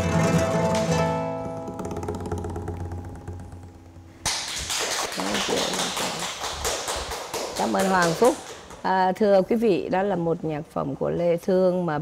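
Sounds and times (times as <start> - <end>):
classical guitar chord ringing: 0.0 - 4.2
people clapping: 4.2 - 8.9.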